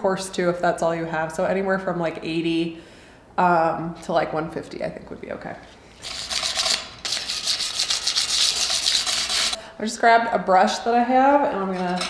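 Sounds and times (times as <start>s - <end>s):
sandpaper rasping over metal: 6.0s - 9.6s.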